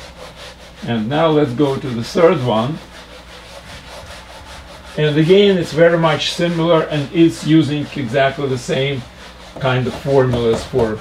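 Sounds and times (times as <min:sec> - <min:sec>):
whiteboard eraser rubbing: 0:00.0 - 0:11.0.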